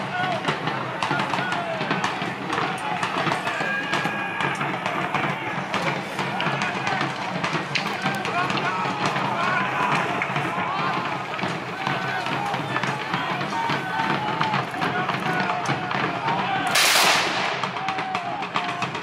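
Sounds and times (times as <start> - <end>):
crowd voices: 0.0 - 19.0
drumming: 0.0 - 19.0
musket volley crack: 0.0 - 19.0.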